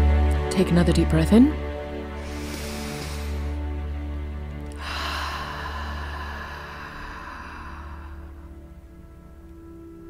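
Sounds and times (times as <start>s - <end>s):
low music drone: 0.0s - 10.0s
slow breath out: 2.2s - 3.7s, 4.6s - 9.0s.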